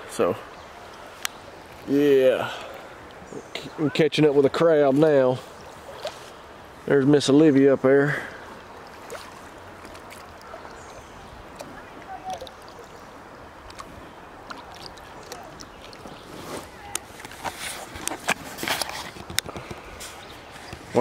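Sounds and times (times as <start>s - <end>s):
water lapping and splashing: 5.0s - 6.9s, 8.0s - 21.0s.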